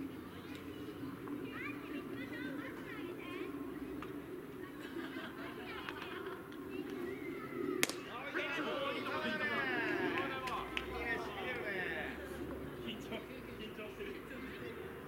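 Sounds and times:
people chattering and calling out: 0.0s - 15.0s
sharp crack: 7.8s - 8.1s.

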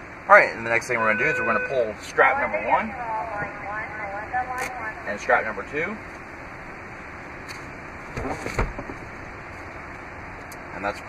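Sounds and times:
steady background hiss: 0.0s - 11.0s
seat landing with clatter and thud: 8.1s - 9.1s.

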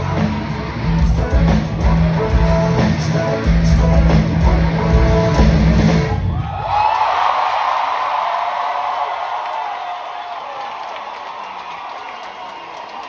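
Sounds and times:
audience cheering and applauding: 6.1s - 13.0s.

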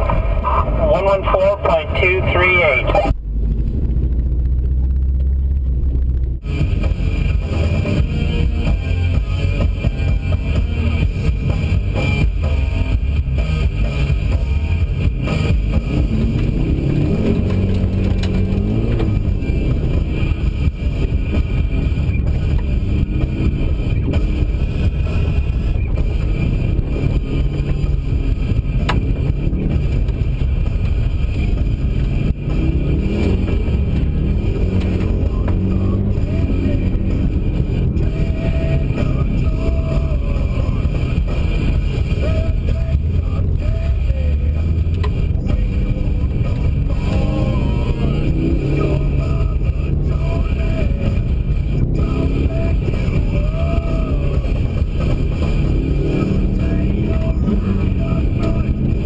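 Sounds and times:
car engine revving: 0.0s - 59.0s
low drivetrain and tyre rumble: 0.0s - 59.0s.

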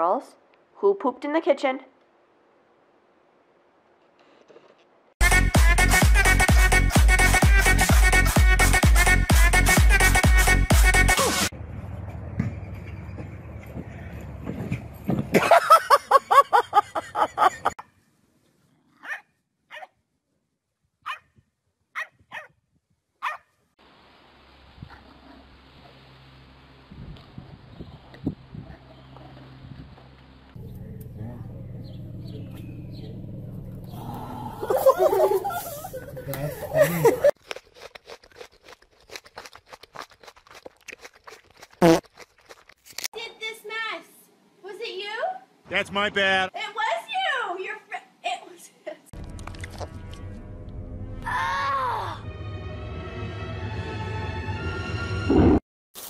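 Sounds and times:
dog barking: 19.0s - 20.0s, 21.0s - 21.3s, 22.0s - 22.5s, 23.2s - 23.5s
groundhog chewing crunchy food: 37.3s - 43.1s
person speaking: 45.7s - 46.6s.

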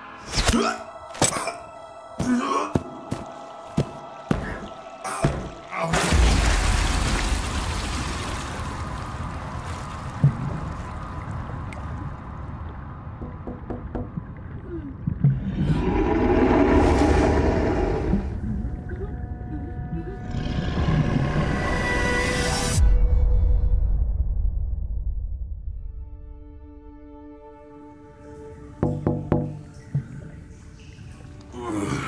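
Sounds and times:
underwater rushing whoosh: 15.4s - 18.4s
faint steady musical tone: 18.4s - 20.2s.

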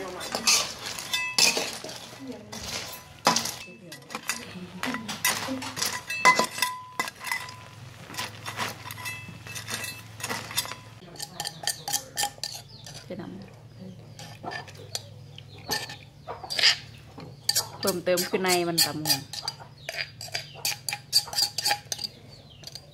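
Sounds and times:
metal utensils clinking on dishes: 0.0s - 13.5s, 14.1s - 22.9s
metallic ring: 0.3s - 1.9s, 2.6s - 7.8s, 8.6s - 12.9s.

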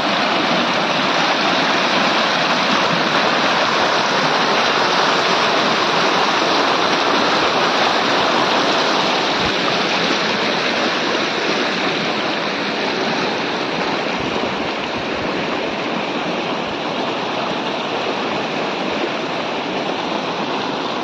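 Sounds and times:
floodwater rushing: 0.0s - 21.0s.

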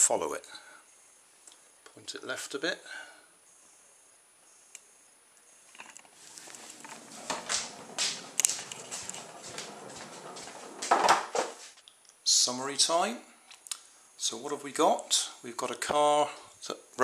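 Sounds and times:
footsteps on wooden floor: 6.2s - 11.8s.

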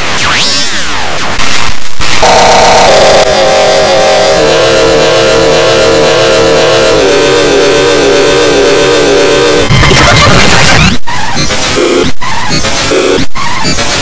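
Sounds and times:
distorted electronic tone: 0.0s - 3.6s, 7.4s - 14.0s.

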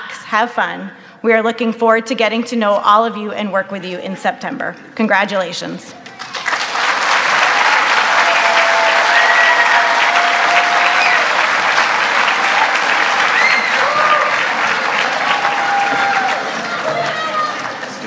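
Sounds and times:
cheers and whoops: 6.0s - 6.7s, 7.4s - 17.7s
audience applauding: 6.0s - 18.0s.

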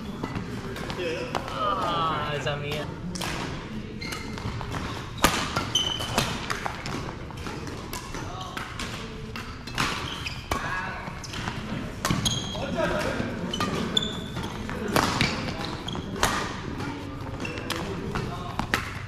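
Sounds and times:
rackets hitting shuttlecock: 2.7s - 19.0s
sneakers squeaking on floor: 3.9s - 19.0s.

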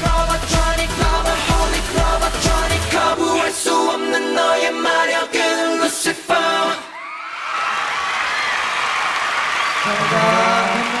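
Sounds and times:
crowd applauding and cheering: 6.9s - 11.0s.

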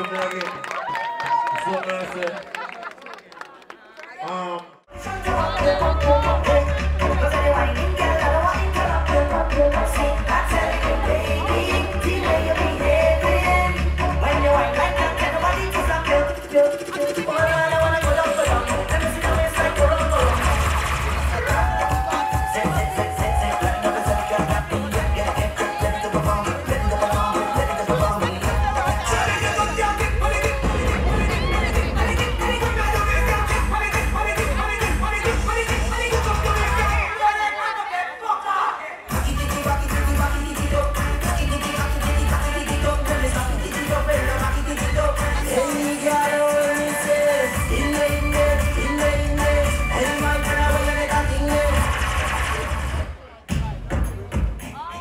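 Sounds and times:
dancehall music over sound system: 4.2s - 55.0s.

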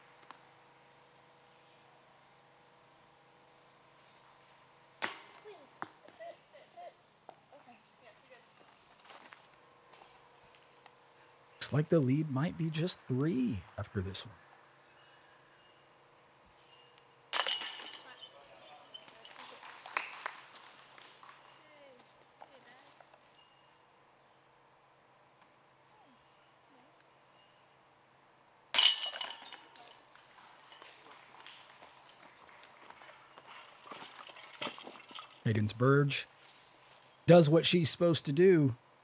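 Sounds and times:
metal chains jingling: 17.4s - 19.7s, 28.8s - 31.0s.

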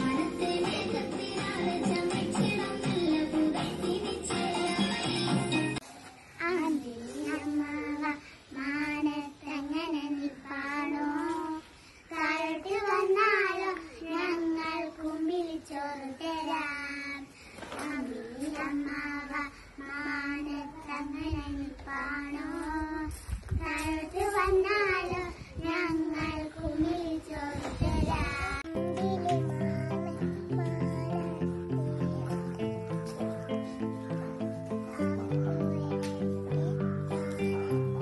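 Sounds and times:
girls singing unaccompanied: 0.0s - 5.8s, 6.4s - 38.0s.

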